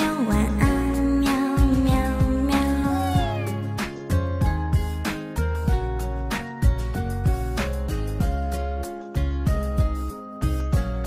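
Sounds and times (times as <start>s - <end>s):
pop song with steady beat: 0.0s - 11.0s
cat meow: 2.6s - 3.8s.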